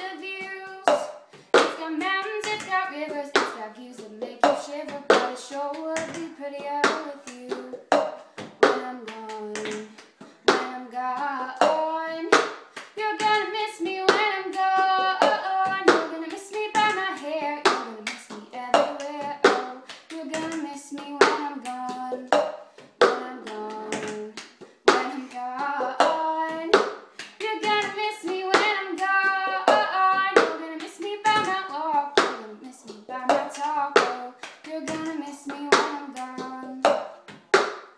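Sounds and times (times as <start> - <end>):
woman singing: 0.0 - 22.4, 23.0 - 37.0
hand claps: 0.0 - 37.9.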